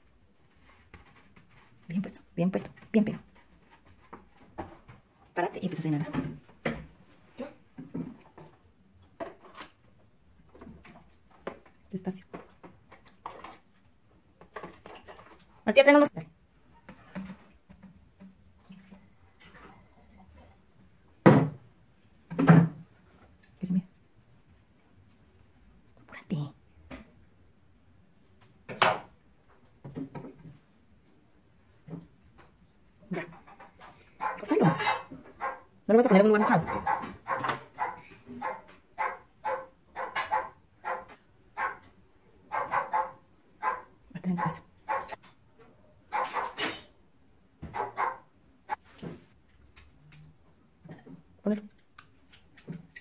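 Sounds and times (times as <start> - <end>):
dog barking indoors: 34.1 - 46.9, 47.6 - 48.8.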